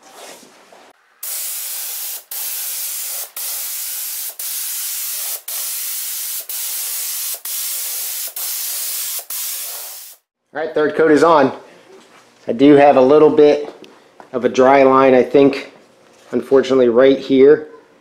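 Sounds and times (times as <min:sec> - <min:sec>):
spray gun hissing: 0:01.2 - 0:10.3.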